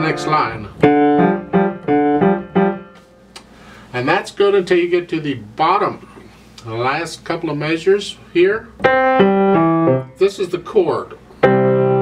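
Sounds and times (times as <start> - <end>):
grand piano notes ringing: 0.0 - 3.0, 8.8 - 10.6, 11.4 - 12.0.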